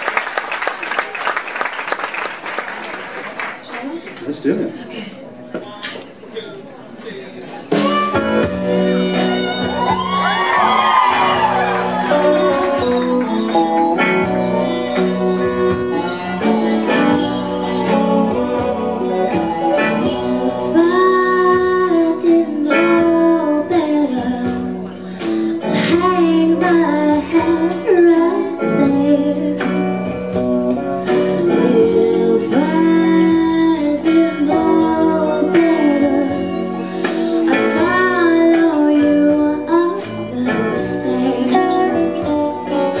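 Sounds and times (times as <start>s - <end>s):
drums: 5.4s - 43.0s
electric guitars: 7.6s - 43.0s
upright bass: 7.7s - 43.0s
woman singing: 10.2s - 43.0s.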